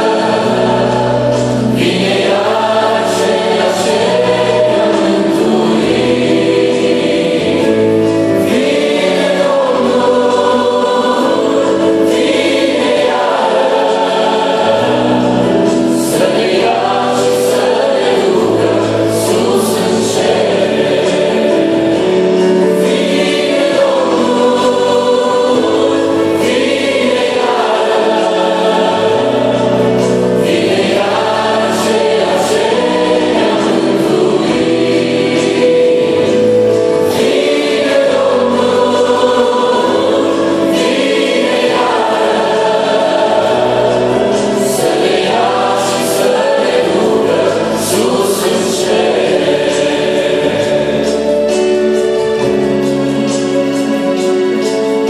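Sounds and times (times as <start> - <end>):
choir singing a hymn in harmony: 0.0 - 55.0
sustained instrumental accompaniment: 0.0 - 55.0.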